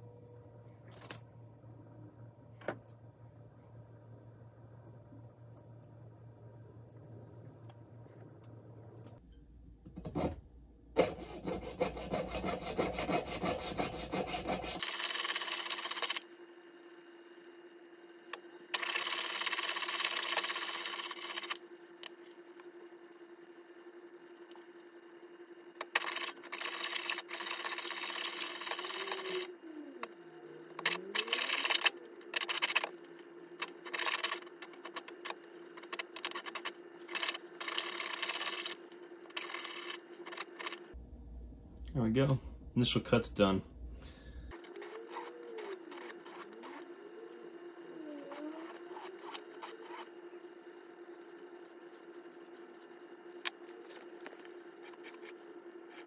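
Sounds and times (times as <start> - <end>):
saw rasping through metal: 11.0 - 14.9.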